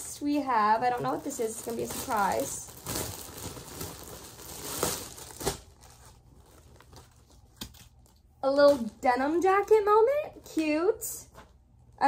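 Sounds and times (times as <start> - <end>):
plastic bag crinkling and tearing: 0.5 - 9.0.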